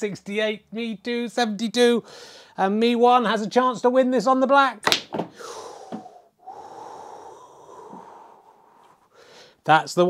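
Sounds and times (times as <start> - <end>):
man breathing hard through nose: 2.0 - 2.6, 5.3 - 9.6.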